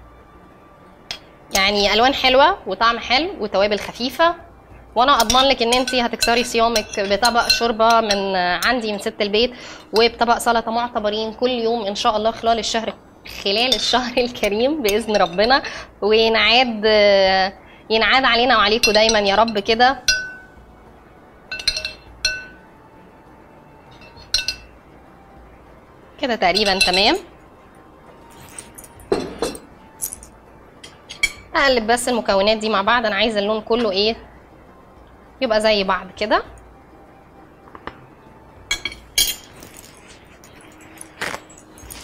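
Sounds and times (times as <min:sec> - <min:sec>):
metal spoon clinking against bowl: 0:05.2 - 0:09.1, 0:13.3 - 0:15.6, 0:18.7 - 0:20.5, 0:21.5 - 0:22.6, 0:23.9 - 0:24.7, 0:26.5 - 0:27.3, 0:28.4 - 0:31.5, 0:38.7 - 0:42.0.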